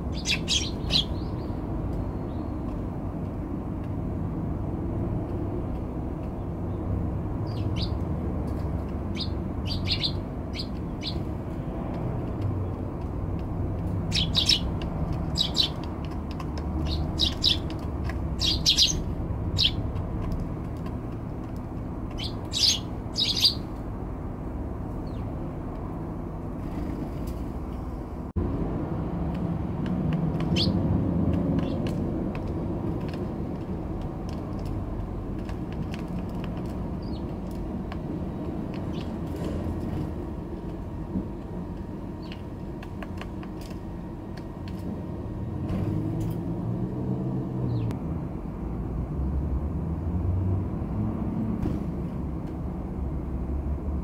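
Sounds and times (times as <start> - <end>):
sparrows chirping: 0.0 - 2.9, 6.3 - 11.6, 13.6 - 23.9, 24.9 - 25.4, 30.3 - 30.9, 31.6 - 32.6, 36.9 - 37.6, 38.7 - 39.2, 42.1 - 42.5, 47.6 - 47.9.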